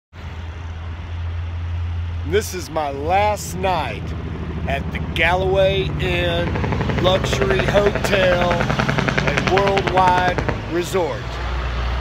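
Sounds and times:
road traffic drone: 0.1 - 12.0.

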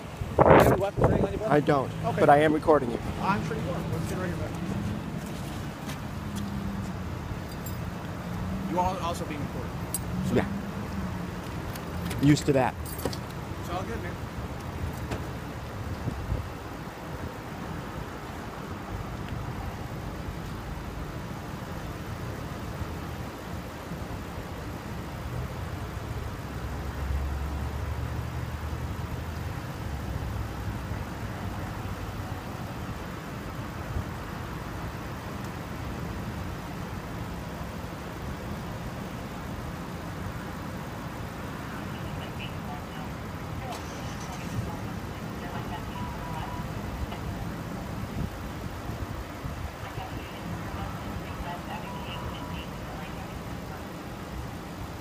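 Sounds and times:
car engine idling: 28.6 - 48.9.

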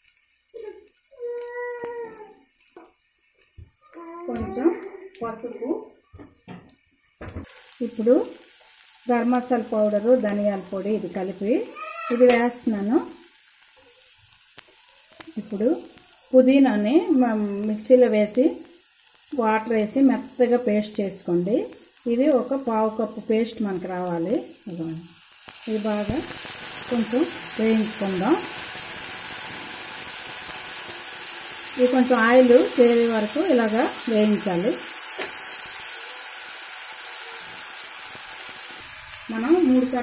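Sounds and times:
water hissing in hot pan: 0.0 - 40.0
water pouring: 25.1 - 34.2.

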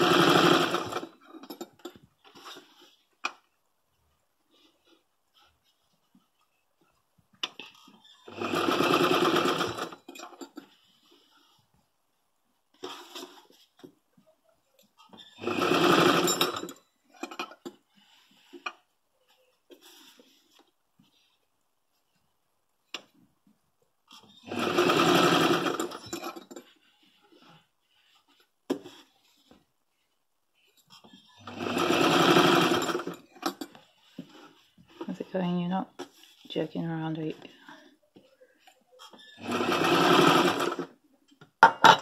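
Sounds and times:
sewing machine stitching: 0.0 - 1.6, 8.1 - 10.6, 15.2 - 17.4, 24.3 - 26.6, 31.4 - 33.7, 39.2 - 41.0.

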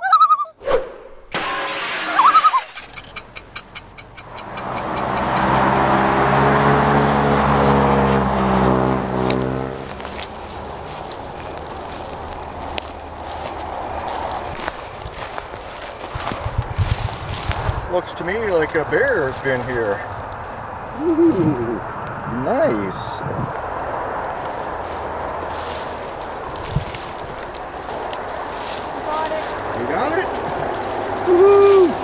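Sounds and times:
large vehicle passing: 2.6 - 32.0
clock ticking: 2.8 - 6.0
footsteps through dry grass: 7.2 - 21.6, 23.4 - 32.0.

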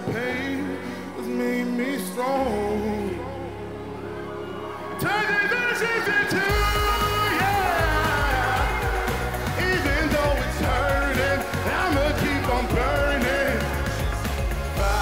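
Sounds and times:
man singing: 0.0 - 3.8, 5.0 - 15.0
live pop band playing: 4.9 - 15.0
heavy bass: 6.5 - 15.0.

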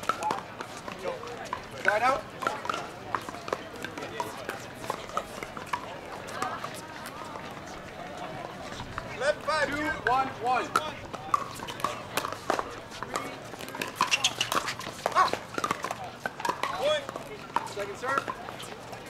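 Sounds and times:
voices calling out: 0.0 - 19.0.

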